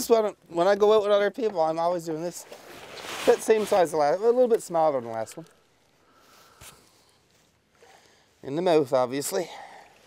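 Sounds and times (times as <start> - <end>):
faint outdoor background hiss: 0.0 - 10.0.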